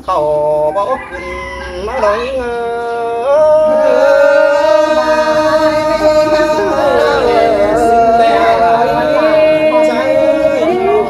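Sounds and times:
person singing unaccompanied: 0.0s - 11.0s.

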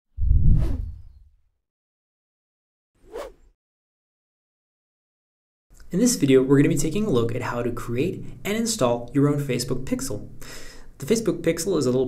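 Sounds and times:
whoosh with deep boom: 0.2s - 1.2s.

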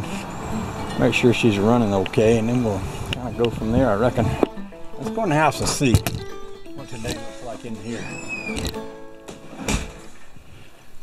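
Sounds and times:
held tone: 2.4s - 9.4s
rustling handling noise: 4.0s - 10.9s
thud: 9.3s - 10.2s.

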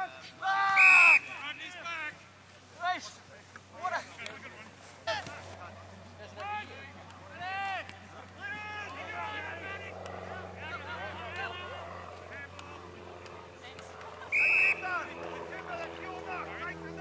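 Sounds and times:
players shouting: 0.0s - 2.2s, 6.2s - 12.8s, 13.8s - 17.0s
whistle blast: 0.7s - 1.5s, 14.3s - 15.0s.

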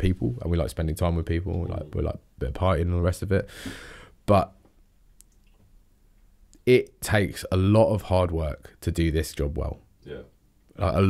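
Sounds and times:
man speaking: 0.0s - 3.5s, 4.3s - 4.6s, 6.6s - 11.0s.

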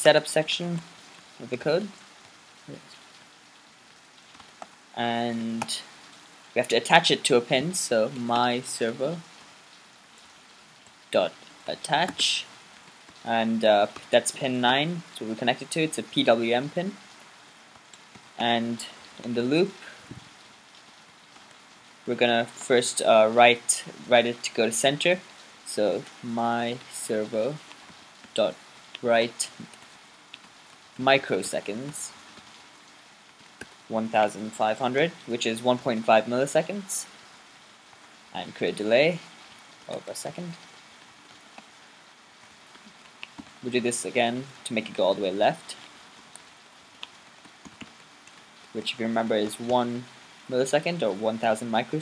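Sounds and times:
low hiss: 0.0s - 52.0s.

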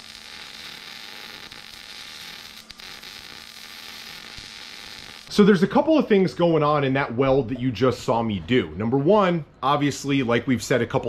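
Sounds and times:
welding arc crackling: 0.0s - 5.8s.

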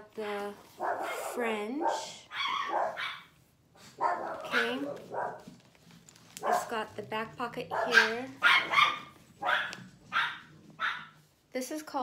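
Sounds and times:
dog barking: 0.8s - 5.6s, 6.4s - 6.9s, 7.6s - 11.2s.

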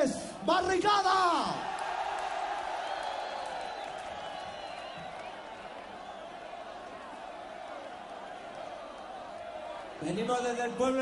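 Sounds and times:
crowd cheering and whistling: 1.6s - 11.0s.

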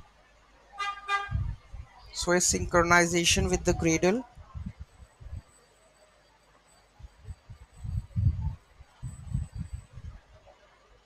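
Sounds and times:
short horn toots: 0.8s - 1.5s.

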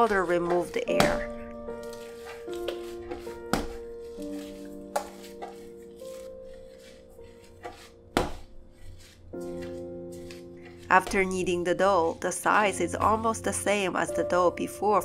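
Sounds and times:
dough thumping on wooden board: 0.0s - 11.4s
background music with held notes: 0.0s - 15.0s.

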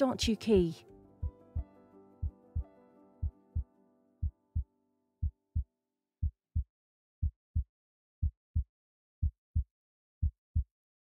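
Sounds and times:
background music chords: 0.0s - 4.8s
heartbeat thumps: 1.2s - 10.7s.

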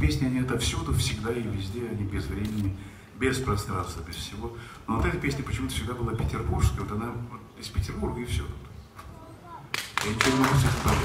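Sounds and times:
audience applause: 9.8s - 11.0s.

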